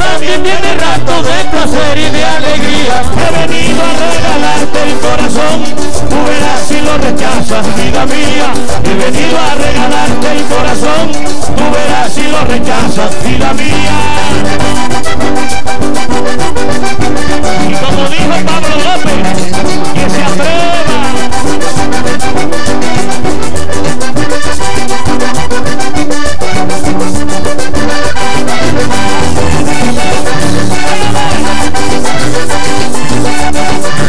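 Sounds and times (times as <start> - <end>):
bass and percussion: 0.0 - 34.0
button accordion melody: 0.0 - 34.0.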